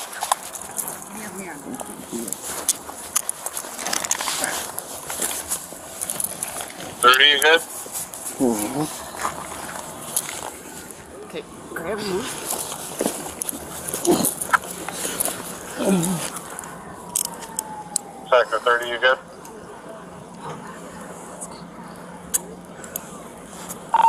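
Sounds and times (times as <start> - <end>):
clicks of gear and handcuffs: 2.2 - 6.8, 12.5 - 18.1
person grunting: 15.7 - 16.3.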